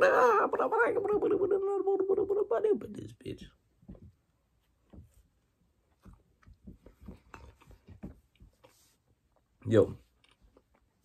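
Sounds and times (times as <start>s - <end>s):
faint chewing crunches: 9.3s - 11.0s.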